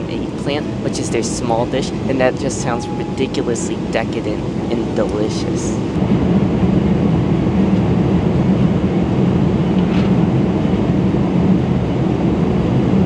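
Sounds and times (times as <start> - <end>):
airplane cabin drone: 0.0 - 13.0.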